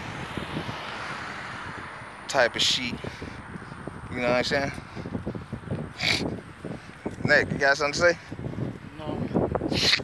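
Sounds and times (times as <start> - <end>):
steady outdoor rush: 0.0 - 10.0.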